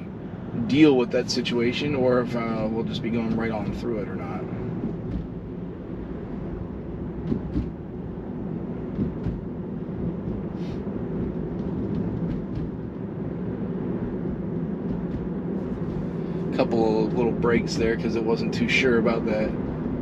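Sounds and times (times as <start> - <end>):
road and tyre rumble: 0.0 - 20.0.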